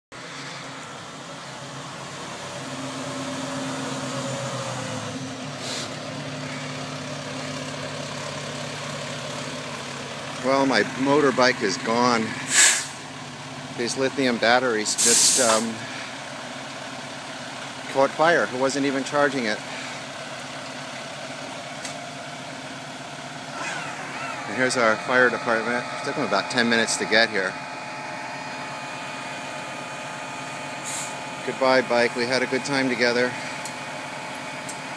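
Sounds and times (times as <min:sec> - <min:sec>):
large vehicle engine idling: 0:00.2 - 0:34.9
short hiss: 0:05.6 - 0:06.0, 0:12.5 - 0:13.0, 0:15.0 - 0:15.6.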